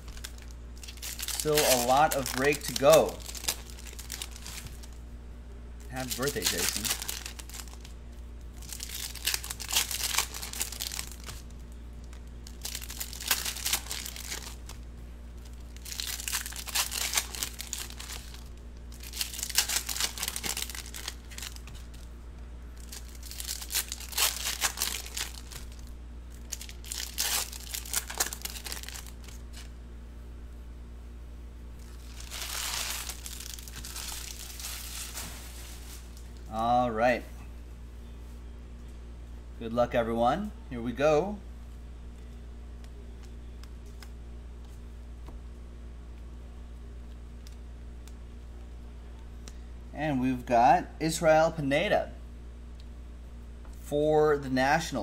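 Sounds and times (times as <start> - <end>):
plastic wrappers tearing and crinkling: 0.0 - 5.0, 5.9 - 8.0, 8.6 - 14.8, 15.4 - 22.0, 22.8 - 29.7, 31.8 - 36.5.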